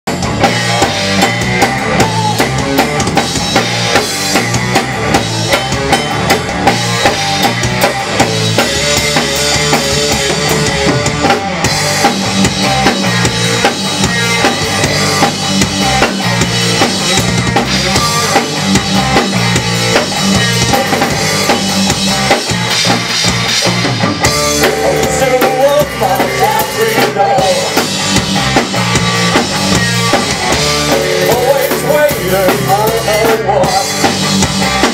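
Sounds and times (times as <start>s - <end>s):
band instruments: 0.0s - 34.9s
drum kit rock beat: 0.0s - 34.9s.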